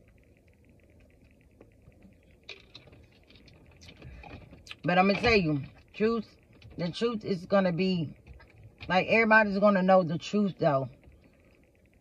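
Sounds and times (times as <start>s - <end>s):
faint low car hum: 0.0s - 12.0s.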